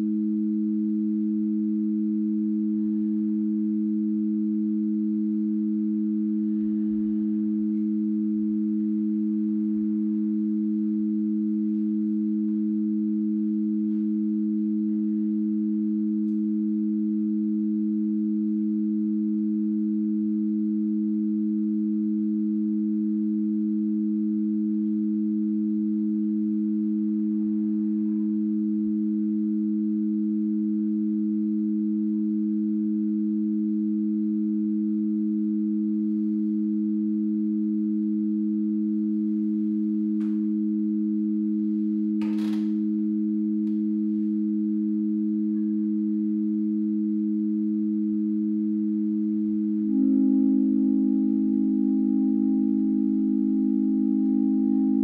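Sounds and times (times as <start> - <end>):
low electronic sine tone drone: 0.0 - 55.0.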